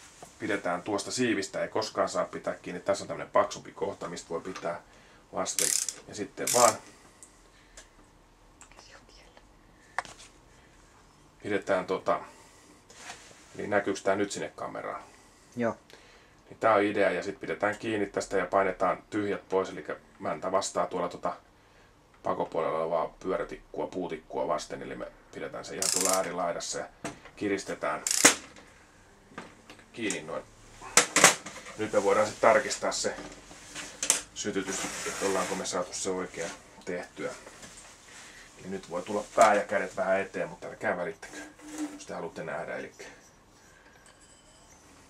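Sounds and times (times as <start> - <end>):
socket wrench handling ticks: 5.6 - 6.8, 25.8 - 26.3, 28.1 - 28.4
sharp metallic click: 25.8 - 26.3, 28.1 - 28.4.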